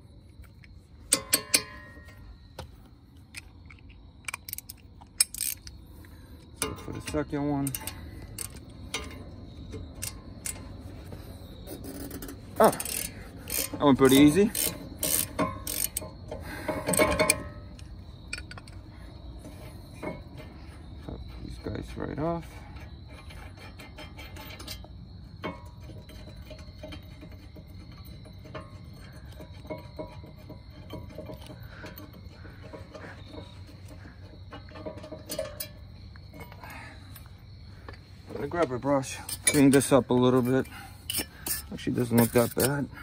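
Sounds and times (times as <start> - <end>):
metal wrench clinking and scraping: 0.3 - 43.0.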